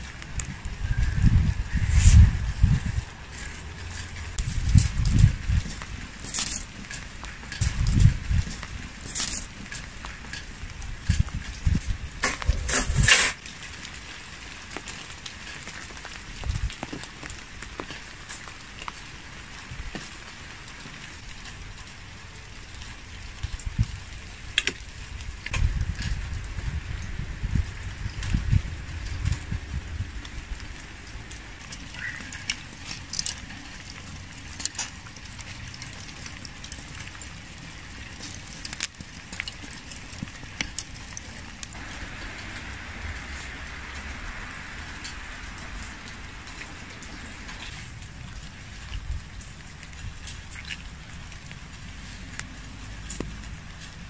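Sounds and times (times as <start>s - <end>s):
steady outdoor hiss: 0.0s - 54.0s.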